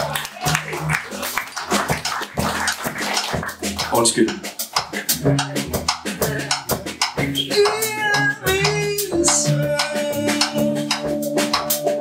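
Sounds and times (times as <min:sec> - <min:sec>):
electric bass: 0:00.0 - 0:04.3, 0:05.1 - 0:12.0
drum kit: 0:00.0 - 0:12.0.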